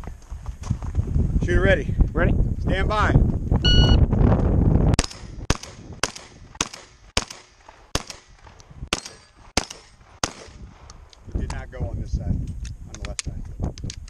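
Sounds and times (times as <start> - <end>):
low rumbling on microphone: 0.0 - 5.0
shot timer beep: 3.7 - 4.0
shotgun shots: 5.0 - 10.8.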